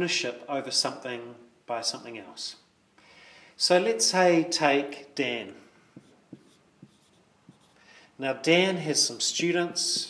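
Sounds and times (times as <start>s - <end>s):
marker writing on a whiteboard: 6.0s - 7.8s, 9.8s - 10.0s.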